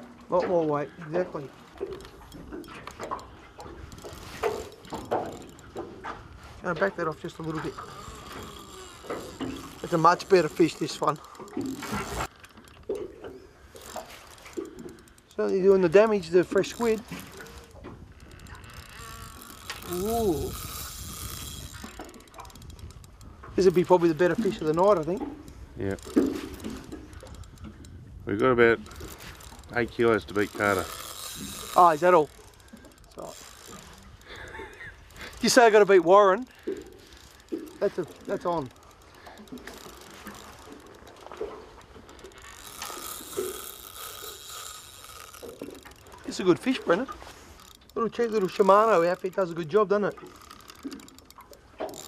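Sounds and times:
fishing reel clicking: 0:00.3 - 0:52.0.

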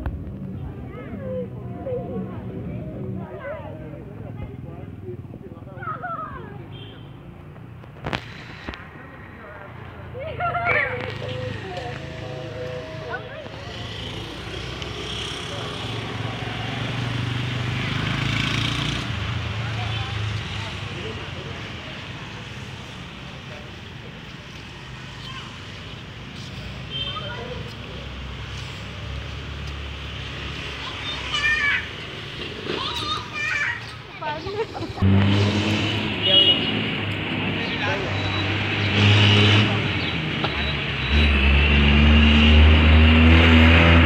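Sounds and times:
people talking in background: 0:00.0 - 0:35.0, 0:36.0 - 0:41.4
broad background noise: 0:00.0 - 0:44.0.

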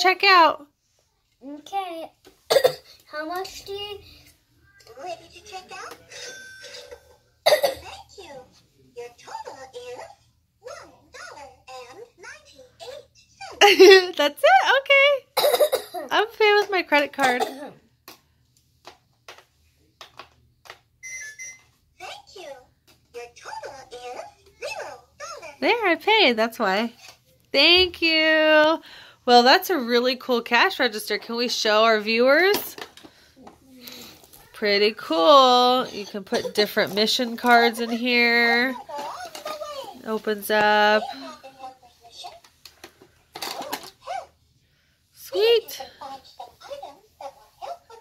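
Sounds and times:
two-tone electronic beep: 0:21.0 - 0:21.6.

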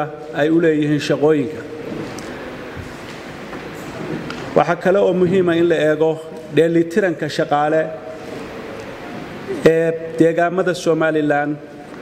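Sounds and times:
large hall rumbling hiss: 0:00.0 - 0:12.0.

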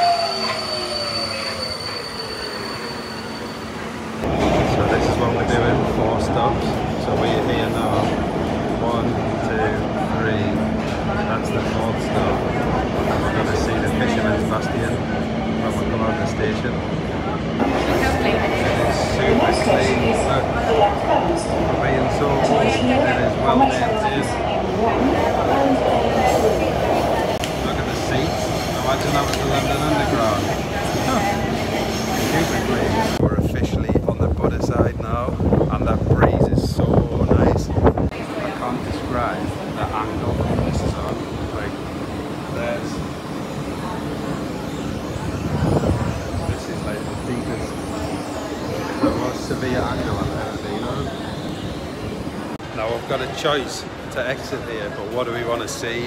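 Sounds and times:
metro train rumbling: 0:00.0 - 0:56.0
people's voices: 0:04.2 - 0:56.0
wind buffeting microphone: 0:33.2 - 0:38.2, 0:39.7 - 0:41.5, 0:45.1 - 0:47.1.

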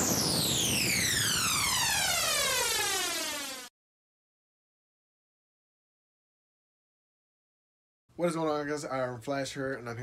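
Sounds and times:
electronic downward sweep: 0:00.0 - 0:03.7
noisy rush: 0:00.0 - 0:03.7.

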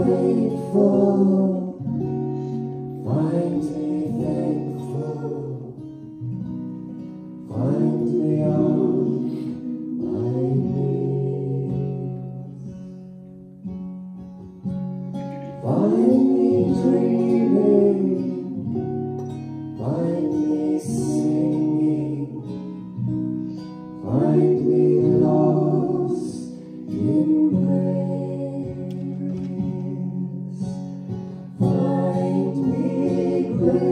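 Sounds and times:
people singing: 0:00.0 - 0:06.6, 0:07.3 - 0:13.0, 0:15.4 - 0:33.9
acoustic guitar strumming: 0:00.0 - 0:33.9.

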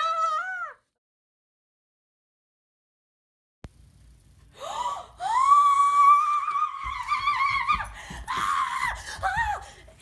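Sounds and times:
woman screaming: 0:00.0 - 0:00.9, 0:05.2 - 0:09.8
woman gasping: 0:04.5 - 0:05.4.

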